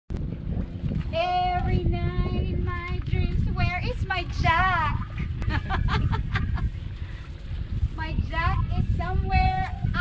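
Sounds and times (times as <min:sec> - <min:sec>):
low rumble: 0:00.1 - 0:10.0.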